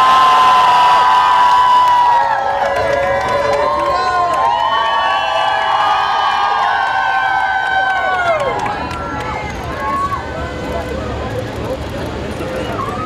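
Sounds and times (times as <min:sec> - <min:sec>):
crowd cheering and screaming: 0:00.0 - 0:11.0, 0:12.4 - 0:13.0
crowd chatter: 0:08.0 - 0:13.0.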